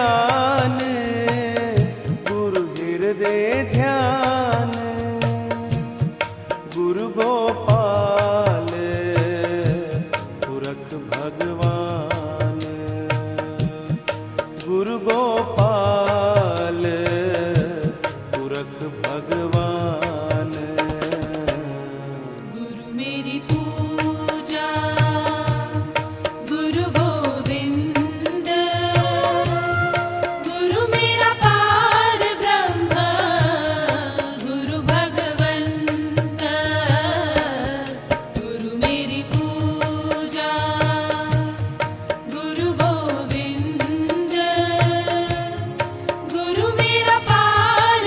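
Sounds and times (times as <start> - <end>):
devotional song melody: 0.0 - 48.0.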